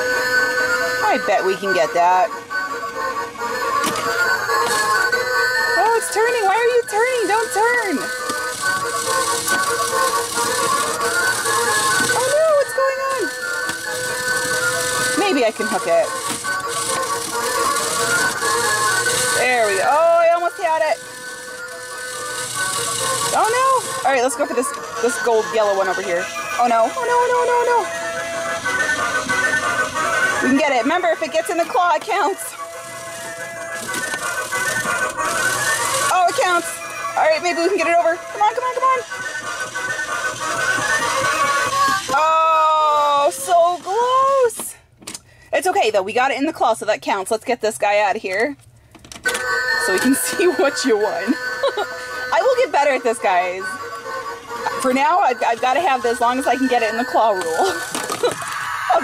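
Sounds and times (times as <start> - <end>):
claw machine electronic tune: 0.0 - 42.2
small motor whirring: 0.0 - 44.5, 49.2 - 59.0.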